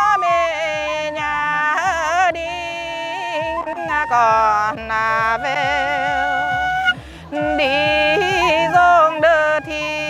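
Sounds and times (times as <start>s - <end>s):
side-blown flute: 0.0s - 10.0s
woman singing folk song: 0.0s - 10.0s.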